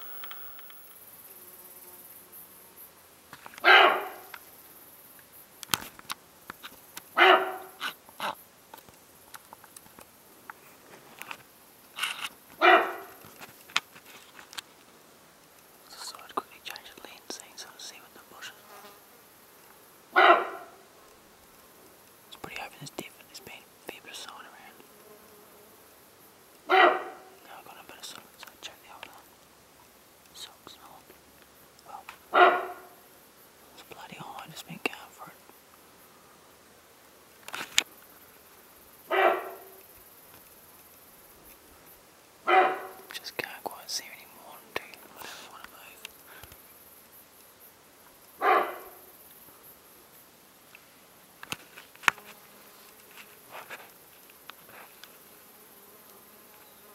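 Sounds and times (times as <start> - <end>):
crackling movement through bush: 0.0 - 20.2, 20.8 - 36.0, 36.8 - 56.9
deer alarm barks: 3.6 - 4.3, 7.2 - 7.9, 12.6 - 13.2, 20.2 - 20.8, 26.7 - 27.3, 32.3 - 33.0, 39.1 - 39.8, 42.5 - 43.1, 48.4 - 49.1.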